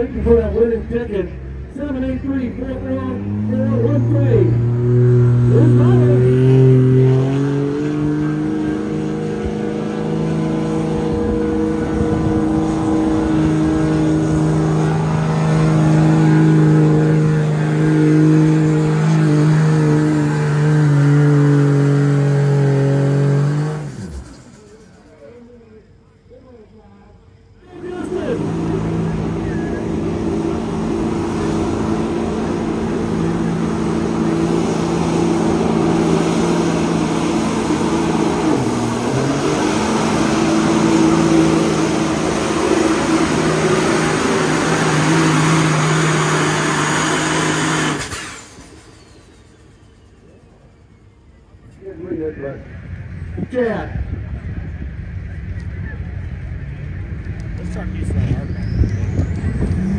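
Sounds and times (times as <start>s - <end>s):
truck engine at high revs: 0.0s - 25.5s, 27.7s - 59.9s.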